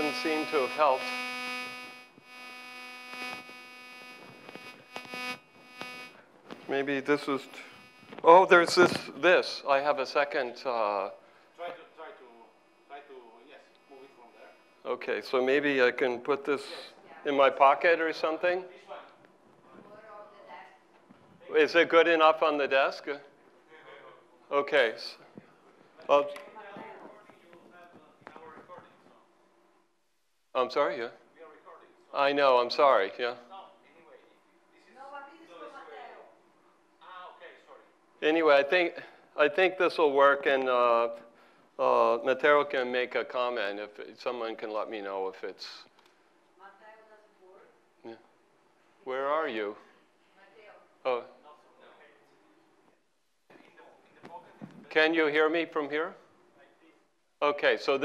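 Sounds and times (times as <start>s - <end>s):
electronic buzz in microphone system: 0.0s - 8.5s.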